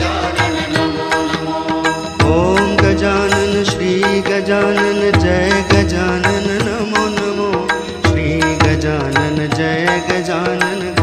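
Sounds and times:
percussion strikes: 0.0s - 11.0s.

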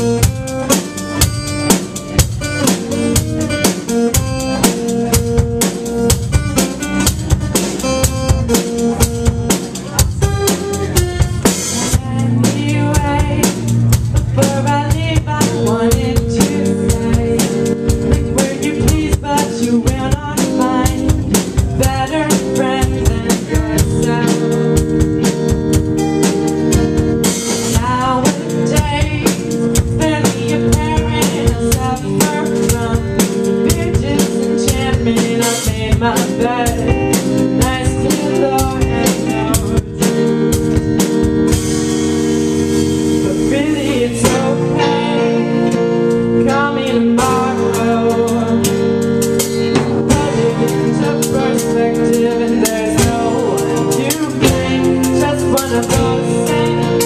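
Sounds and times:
acoustic and electric guitars: 0.0s - 57.0s
bass guitar: 0.0s - 57.0s
drum kit beat: 0.0s - 57.0s
woman singing: 9.5s - 25.4s, 27.5s - 40.6s, 43.2s - 57.0s.

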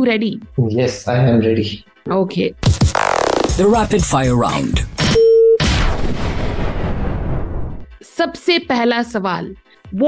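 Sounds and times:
loud boom: 5.0s - 7.8s.

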